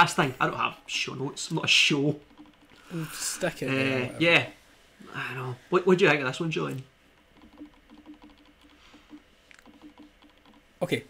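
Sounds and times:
keyboard typing: 1.4s - 3.6s, 7.1s - 11.0s.

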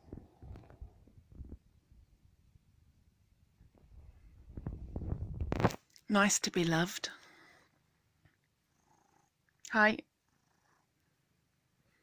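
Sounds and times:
cat purring faintly: 0.0s - 5.7s, 7.0s - 12.0s.

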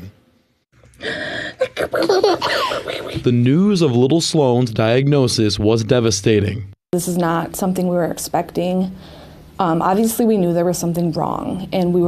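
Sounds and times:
toddler giggling: 1.6s - 3.3s.

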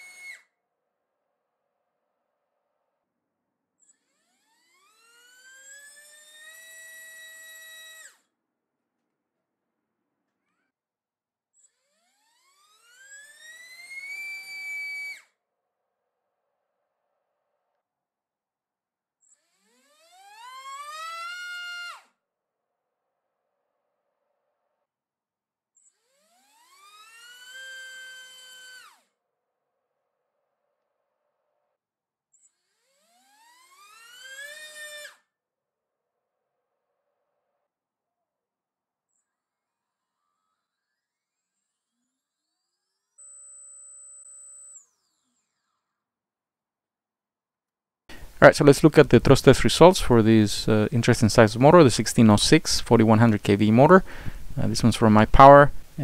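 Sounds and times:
electric motor whine: 4.2s - 8.2s, 26.1s - 29.0s, 32.8s - 35.1s.

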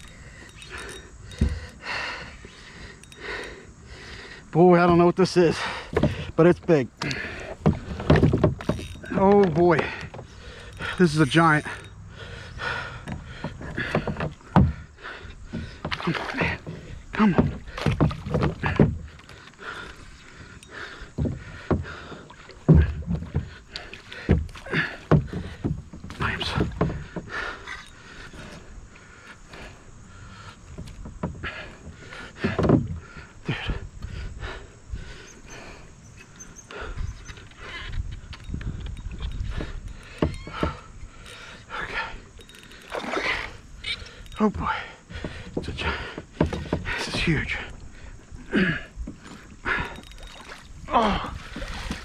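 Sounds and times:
water splashing: 5.6s - 27.1s, 42.7s - 43.6s, 49.6s - 52.0s.

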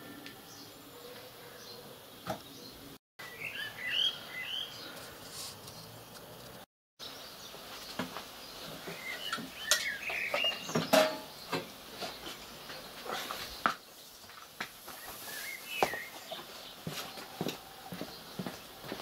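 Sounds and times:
bird chirps: 0.0s - 6.0s, 7.0s - 14.2s, 14.9s - 18.6s.

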